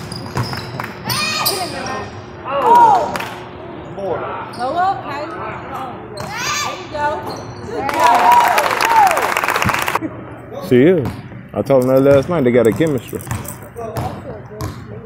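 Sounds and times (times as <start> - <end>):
sneakers squeaking: 0.0 - 2.3, 4.4 - 8.0, 12.1 - 15.0
voices echoing: 1.0 - 8.4
basketball bouncing on hardwood: 12.1 - 14.8.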